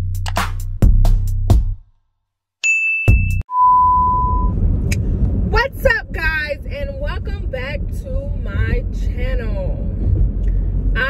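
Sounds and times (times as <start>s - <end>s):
car cabin road and engine rumble: 3.8s - 11.0s
woman talking: 5.5s - 9.9s.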